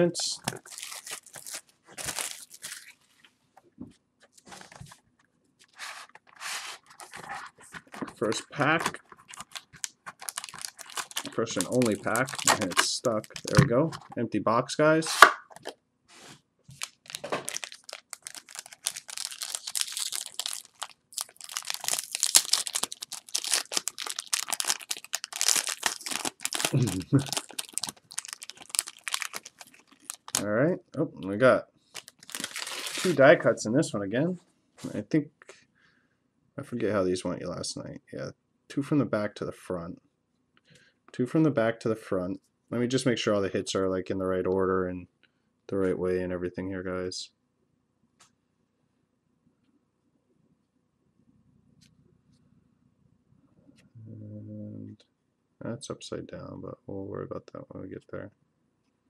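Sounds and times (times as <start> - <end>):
plastic wrap tearing and crinkling: 0.4 - 3.0, 8.2 - 13.6, 16.7 - 30.5, 31.9 - 33.2.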